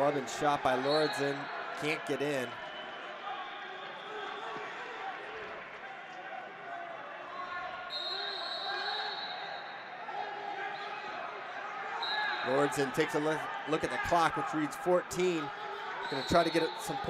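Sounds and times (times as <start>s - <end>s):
high steady whistle-like tone: 7.9s - 9.9s.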